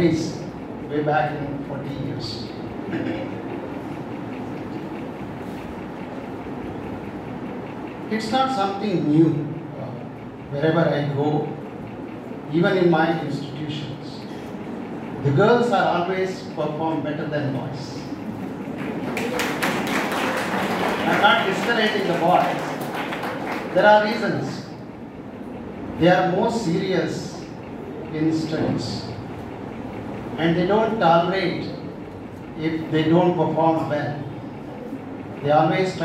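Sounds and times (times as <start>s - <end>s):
audience applauding: 18.8s - 23.8s.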